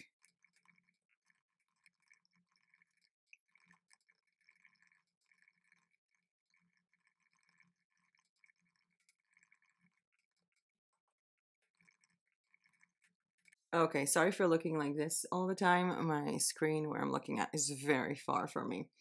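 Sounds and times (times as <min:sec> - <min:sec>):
faint laptop keyboard typing: 0:00.0 - 0:13.7.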